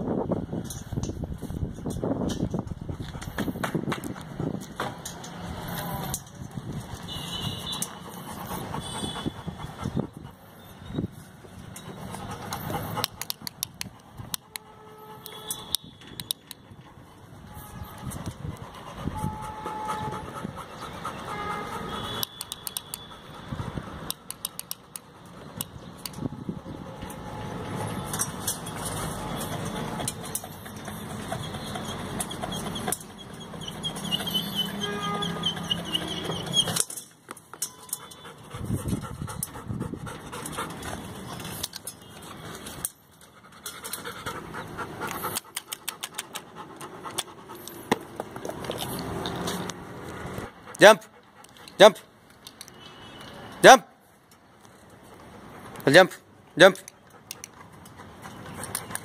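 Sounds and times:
dog panting: 0:07.9 - 0:10.8, 0:11.6 - 0:14.6, 0:18.2 - 0:22.1, 0:23.0 - 0:25.8, 0:28.9 - 0:36.7, 0:38.0 - 0:41.6, 0:43.2 - 0:48.7, 0:49.9 - 0:52.0, 0:56.9 - 0:59.0.

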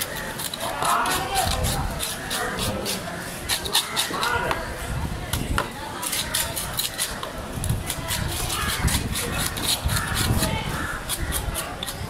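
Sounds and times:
knife cutting through fish: 0:00.0 - 0:04.6, 0:06.0 - 0:12.0.

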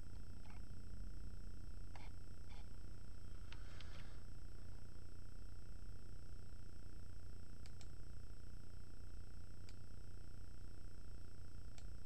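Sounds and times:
faint high whine: 0:00.0 - 0:12.0
low electrical hum: 0:00.0 - 0:12.0
computer mouse clicks: 0:07.6 - 0:08.0.

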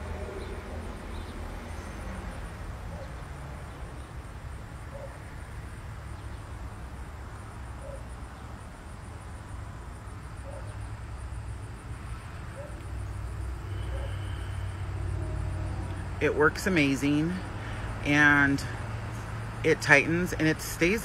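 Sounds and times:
insects chirping: 0:00.0 - 0:21.0.

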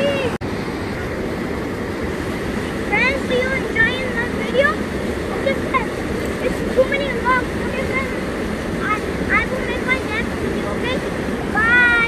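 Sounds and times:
river rushing over rapids: 0:00.0 - 0:12.0.

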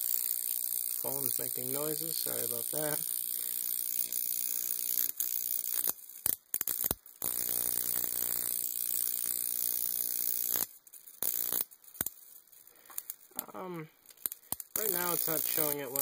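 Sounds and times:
arc crackles: 0:00.0 - 0:16.0
electric arc buzzing: 0:00.0 - 0:16.0.

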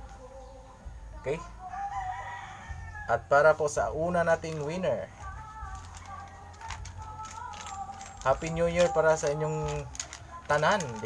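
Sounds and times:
rooster crowing: 0:01.6 - 0:03.4.

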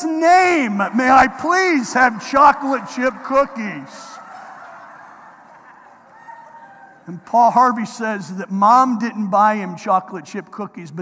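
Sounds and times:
congregation laughing: 0:00.0 - 0:07.8.

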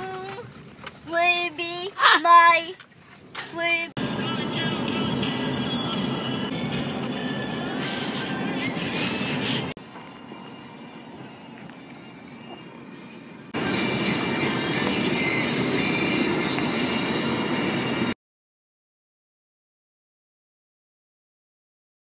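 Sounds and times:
car cabin road and engine noise: 0:00.0 - 0:18.2.

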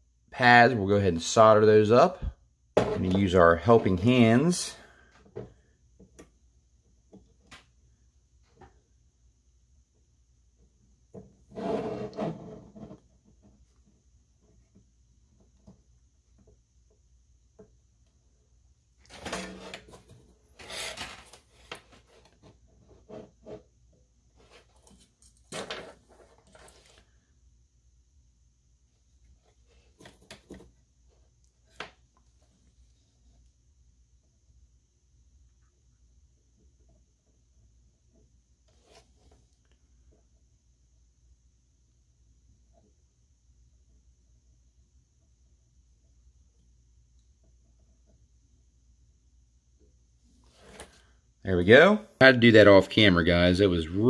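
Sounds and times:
rubbing and scraping on wooden bench: 0:11.4 - 0:14.8, 0:19.0 - 0:27.2.

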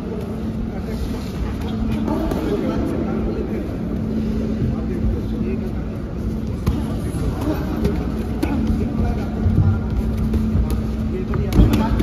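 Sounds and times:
large hall noise: 0:00.0 - 0:12.0
steady low hum: 0:00.0 - 0:12.0.

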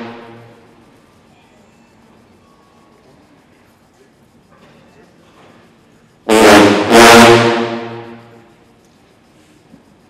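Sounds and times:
low brass chord: 0:06.3 - 0:08.4.

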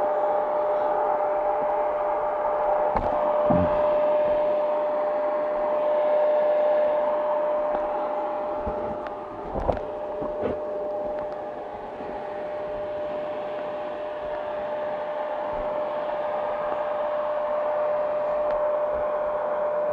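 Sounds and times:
engine whine: 0:00.0 - 0:19.9.

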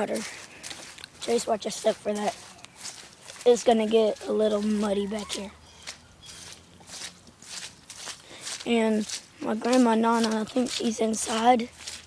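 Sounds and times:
footsteps squelching in mud: 0:00.0 - 0:12.0.

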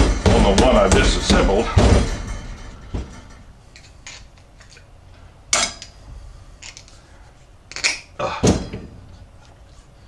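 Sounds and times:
metallic knock: 0:00.0 - 0:03.5
small metal parts clinking: 0:03.7 - 0:04.8, 0:06.6 - 0:07.0, 0:07.7 - 0:08.1.

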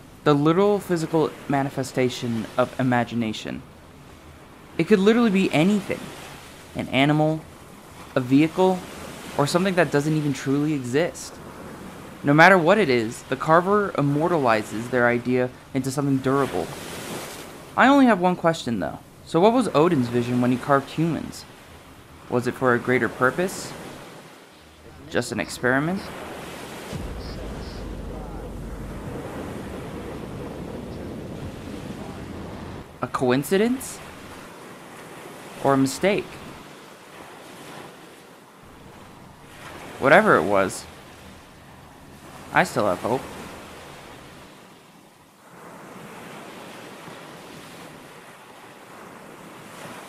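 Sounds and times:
ocean surf rushing: 0:00.0 - 0:44.8
rocket launch roar: 0:26.9 - 0:32.8
deep engine rumble: 0:27.0 - 0:32.9.

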